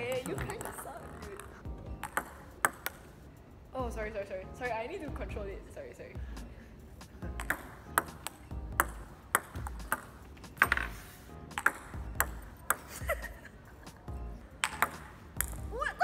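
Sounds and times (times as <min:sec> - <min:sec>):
table tennis ball clicking: 0:00.0 - 0:03.1, 0:07.4 - 0:10.8, 0:11.5 - 0:12.9, 0:14.6 - 0:15.6.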